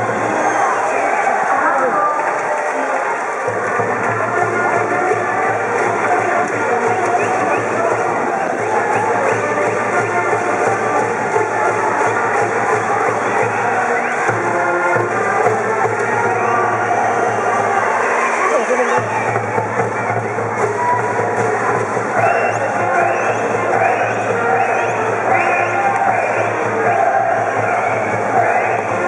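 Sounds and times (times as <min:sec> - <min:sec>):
students chanting and shouting: 0:00.0 - 0:29.0
brass band playing: 0:02.7 - 0:29.0.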